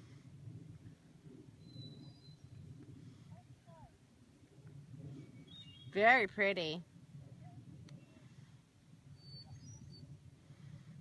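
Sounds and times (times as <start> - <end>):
faint low outdoor rumble: 0.0 - 11.0.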